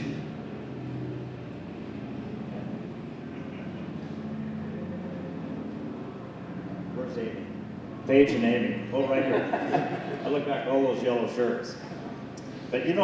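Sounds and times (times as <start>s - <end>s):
low mechanical drone: 0.0s - 13.0s.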